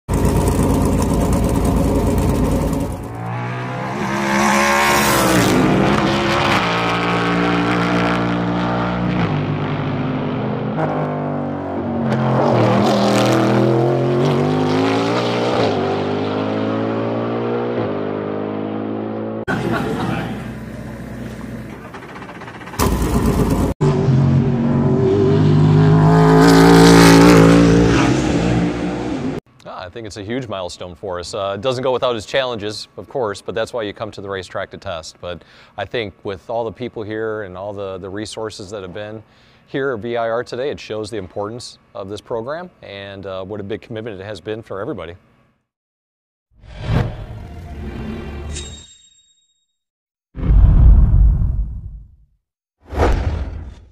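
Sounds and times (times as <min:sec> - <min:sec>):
race car engine running hard: 0:00.1 - 0:03.2
race car engine at speed: 0:00.1 - 0:29.4.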